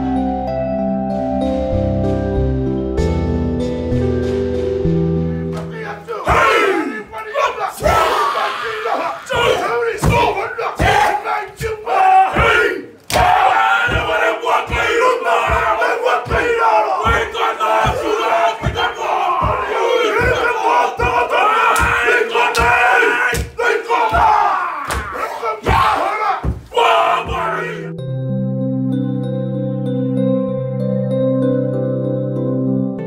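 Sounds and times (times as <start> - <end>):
men chanting shouts in unison: 5.4 - 28.0
stamping and body slaps: 9.3 - 27.6.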